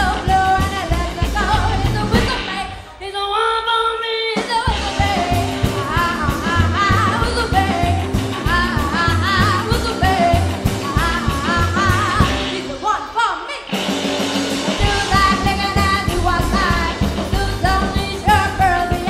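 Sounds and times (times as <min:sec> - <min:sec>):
rockabilly band playing: 0:00.0 - 0:03.2, 0:04.3 - 0:19.0
woman singing: 0:00.0 - 0:13.8, 0:14.8 - 0:19.0.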